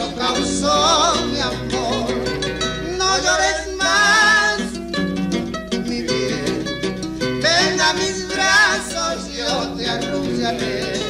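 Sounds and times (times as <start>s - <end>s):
acoustic guitars playing: 0.0s - 11.0s.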